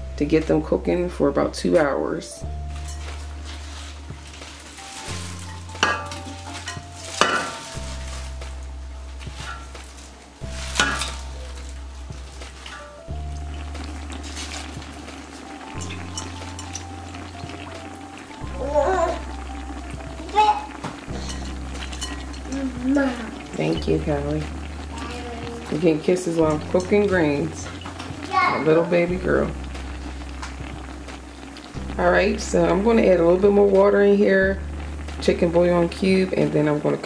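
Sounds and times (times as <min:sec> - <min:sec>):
background music with bass line: 0:00.0 - 0:36.7
wet greens rustling and crackling: 0:02.6 - 0:37.0.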